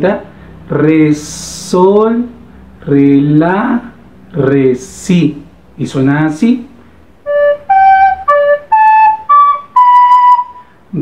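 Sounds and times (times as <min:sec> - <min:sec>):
recorder melody: 0:07.2 - 0:10.7.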